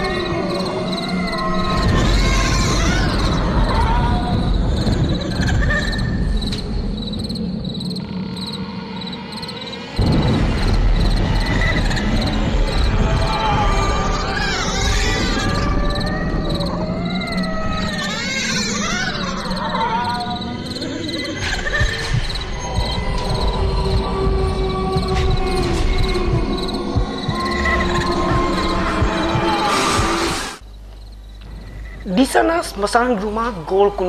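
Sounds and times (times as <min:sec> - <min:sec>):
crickets chirping: 0:00.0 - 0:34.0
loud low rumbling: 0:22.0 - 0:30.7.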